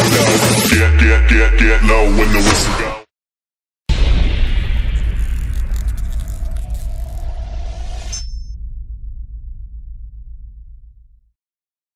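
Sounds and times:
deep boom into low rumble: 0:03.9 - 0:07.9, 0:08.5 - 0:11.3.

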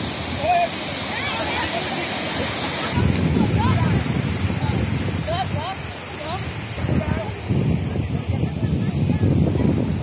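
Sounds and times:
small waves breaking on beach: 0:00.0 - 0:10.0
wind rumble on microphone: 0:02.7 - 0:10.0.

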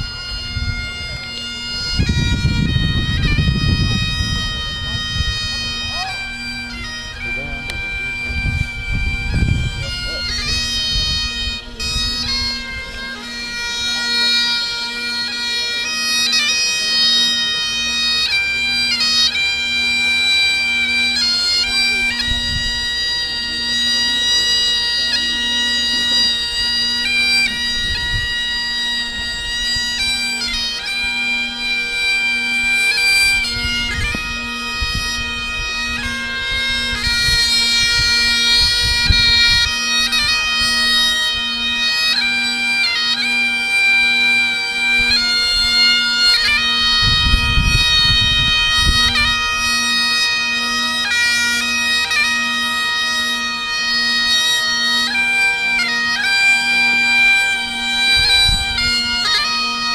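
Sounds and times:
bagpipes playing a tune: 0:00.0 - 0:59.9.

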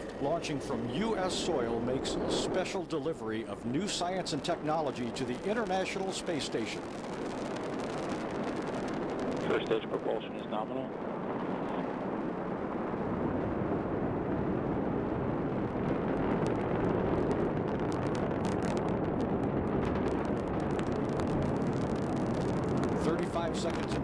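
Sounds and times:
faint crackle: 0:00.0 - 0:24.0
rocket engines deep rumble: 0:00.0 - 0:24.0.

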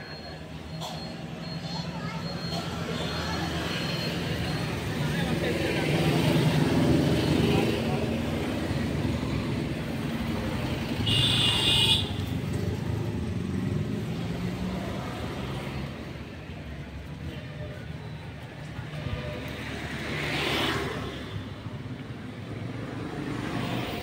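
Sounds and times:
vehicle engine rumble: 0:00.0 - 0:20.3
road traffic: 0:00.0 - 0:24.0
car horn: 0:11.0 - 0:12.3.

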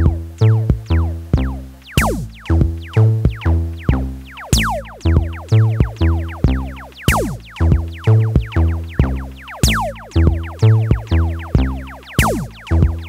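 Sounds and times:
downward-sweeping synth zaps: 0:01.9 - 0:13.0
electronic dance music: 0:01.9 - 0:13.0.

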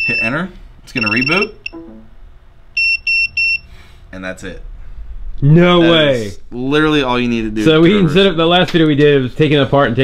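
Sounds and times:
electronic buzzer beeps: 0:00.0 - 0:00.4, 0:01.0 - 0:01.9, 0:02.8 - 0:03.7.

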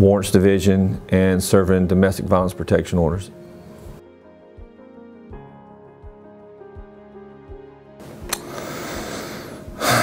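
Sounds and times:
small click: 0:08.2 - 0:08.5
man's intake of breath: 0:08.4 - 0:10.0.

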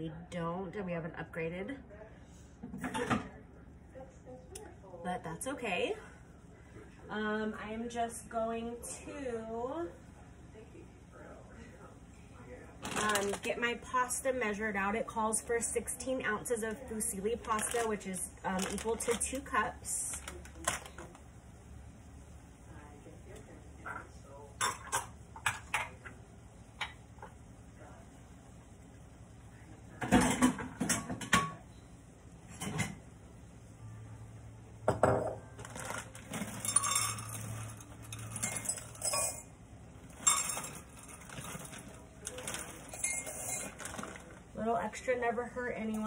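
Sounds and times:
dry pasta rattling in glass bowl: 0:35.6 - 0:39.4, 0:40.1 - 0:44.4.

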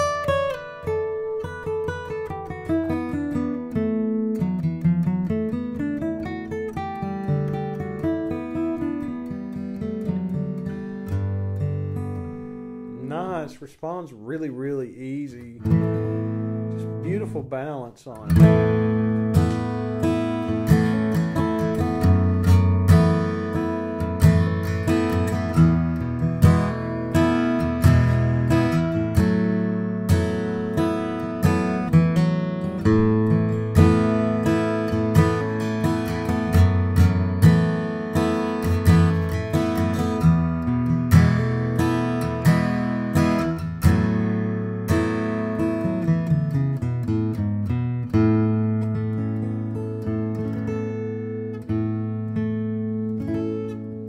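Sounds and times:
acoustic guitar strummed and picked: 0:00.0 - 0:54.0.

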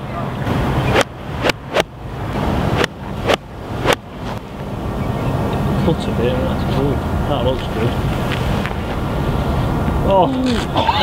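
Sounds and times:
wind rushing over microphone: 0:00.0 - 0:10.7.

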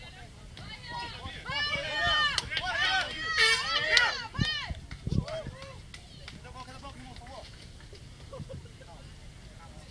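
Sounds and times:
spectators calling out and chattering: 0:00.0 - 0:09.9.

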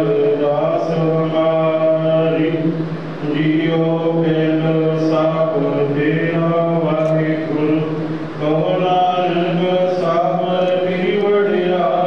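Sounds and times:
low drone: 0:00.0 - 0:12.0
person chanting in held notes: 0:00.0 - 0:12.0.

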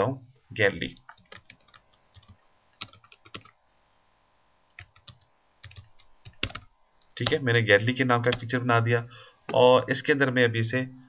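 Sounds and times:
typing on a computer keyboard: 0:01.1 - 0:03.6, 0:04.7 - 0:07.4.

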